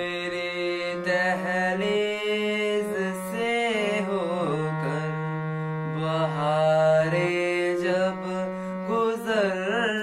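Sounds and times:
harmonium drone and chords: 0.0s - 10.0s
young man singing: 0.0s - 10.0s.

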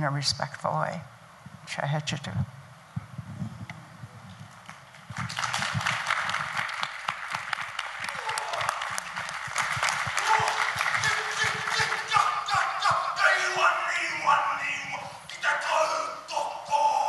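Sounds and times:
audience applause: 5.1s - 12.8s.

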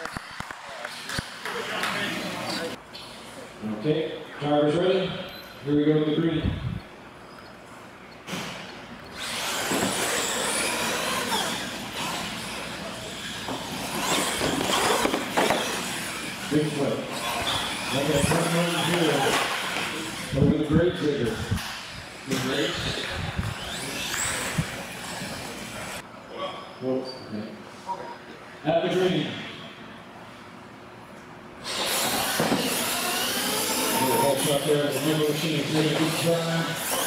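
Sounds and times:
electric motors whining: 8.1s - 26.0s, 31.6s - 37.0s
voices: 9.9s - 29.4s, 32.6s - 37.0s.

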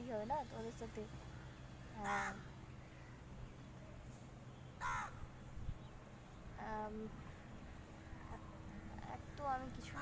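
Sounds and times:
crow cawing: 1.3s - 3.2s, 4.8s - 5.2s.

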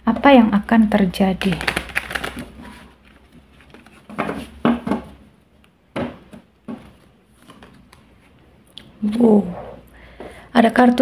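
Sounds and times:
cards shuffling and rustling: 1.4s - 4.6s, 6.8s - 8.4s.

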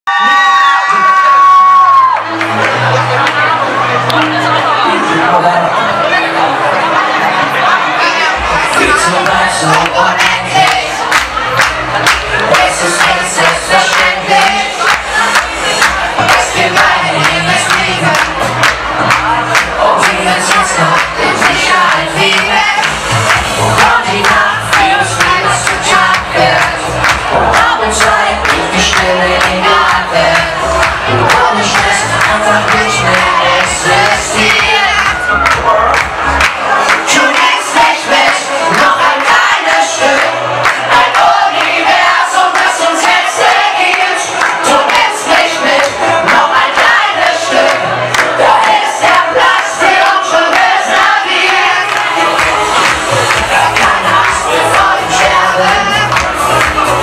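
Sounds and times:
crowd cheering and singing along: 0.0s - 57.0s
man singing: 8.4s - 11.0s, 12.4s - 14.9s, 19.6s - 22.8s, 23.5s - 36.0s, 52.8s - 57.0s
backing music with dance beat: 8.4s - 57.0s.

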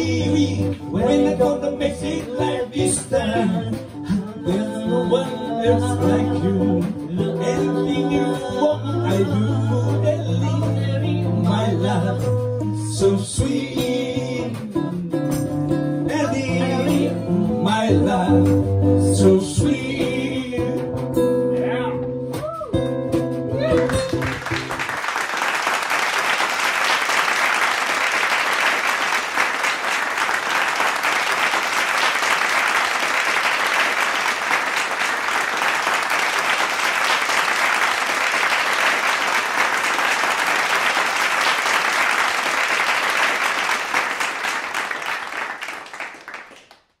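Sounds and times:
small audience applauding: 23.6s - 47.0s.

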